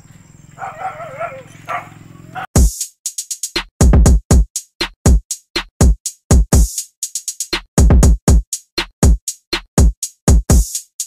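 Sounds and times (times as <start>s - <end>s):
animal's wavering call: 0.6s - 2.5s.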